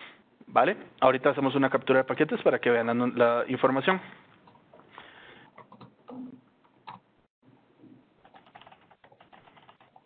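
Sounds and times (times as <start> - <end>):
faint keyboard typing: 5.4 - 7.0, 8.2 - 10.0.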